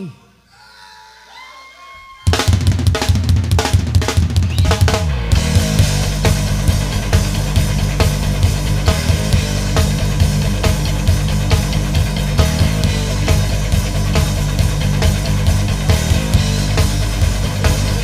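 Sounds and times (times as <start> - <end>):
distorted guitars and bass: 2.3 - 18.0
drum fill on toms kick and snare: 2.3 - 18.0.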